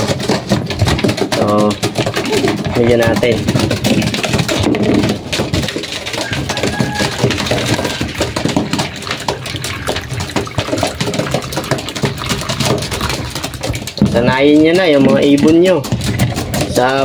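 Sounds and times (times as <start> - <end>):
pigeon beaks tapping plastic: 0.0 - 17.0.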